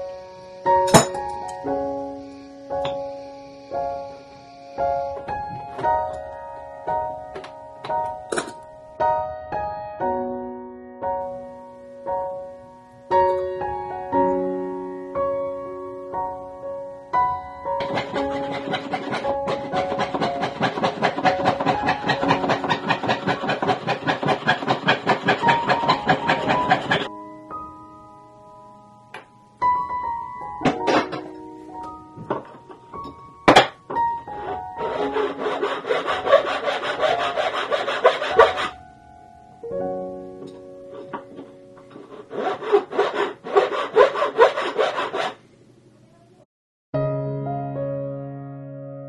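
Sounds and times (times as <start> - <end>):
hand file filing metal: 17.8 - 27.1, 34.4 - 38.7, 41.9 - 45.4
saw blade cutting metal sheet: 17.8 - 27.1, 34.3 - 38.8, 41.9 - 45.4.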